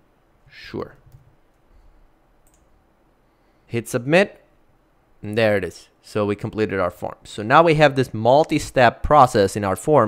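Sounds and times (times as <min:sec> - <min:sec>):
computer keys typing: 0:02.4 - 0:02.7.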